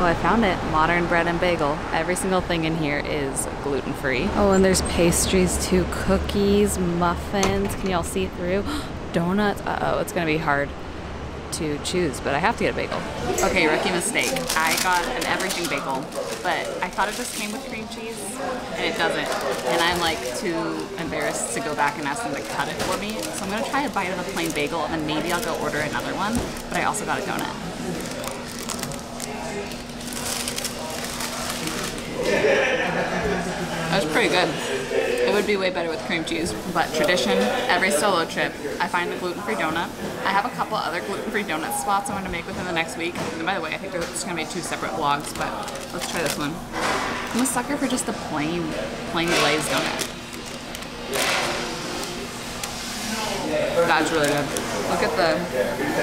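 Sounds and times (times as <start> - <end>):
room murmur: 0.0 - 56.0
paper bag crinkling: 13.6 - 32.3, 44.8 - 47.5, 49.2 - 55.2
chewing crusty bread: 27.8 - 32.2.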